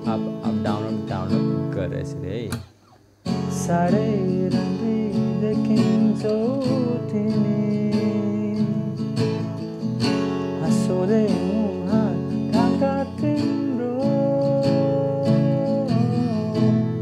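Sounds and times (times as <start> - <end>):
person singing: 0.0 - 2.5, 3.5 - 9.4, 10.6 - 17.0
acoustic guitar strumming: 0.0 - 17.0.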